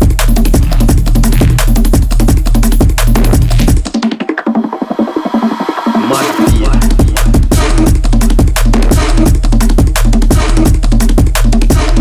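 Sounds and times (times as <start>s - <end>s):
drum and bass track: 0.0s - 12.0s
rapid drum fill: 0.0s - 12.0s.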